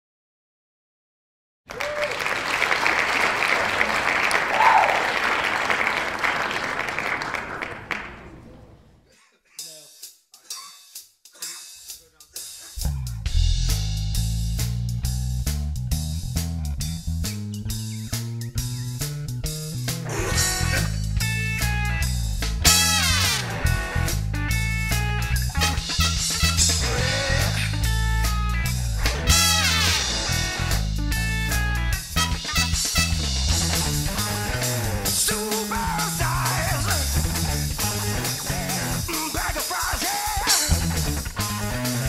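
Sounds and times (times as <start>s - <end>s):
rock band playing: 11.4s - 42.0s.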